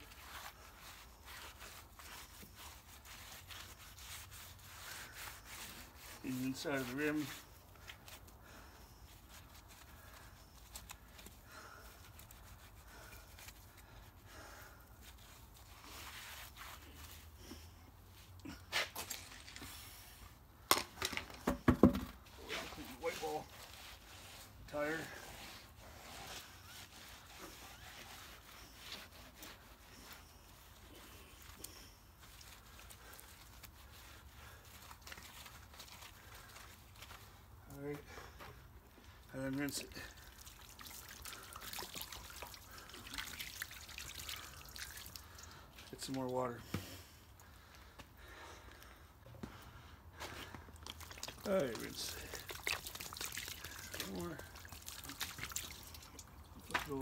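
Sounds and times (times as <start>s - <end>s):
hand scrubbing a tire: 0.0s - 48.7s, 49.4s - 57.0s.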